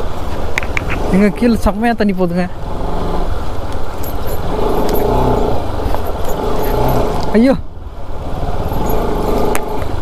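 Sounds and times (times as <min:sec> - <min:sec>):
motorcycle engine at low revs: 0:00.0 - 0:10.0.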